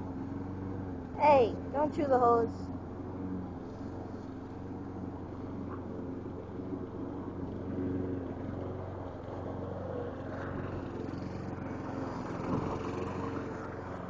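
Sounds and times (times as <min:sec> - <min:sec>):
engine humming steadily: 0:00.0 - 0:14.0.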